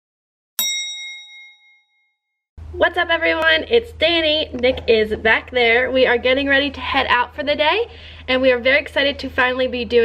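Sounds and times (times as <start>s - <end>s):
bright chime ding: 0.6s - 2.1s.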